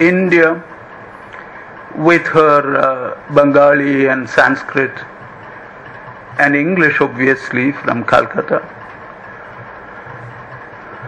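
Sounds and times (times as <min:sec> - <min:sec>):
low room hum with hiss: 0:00.0 - 0:11.0.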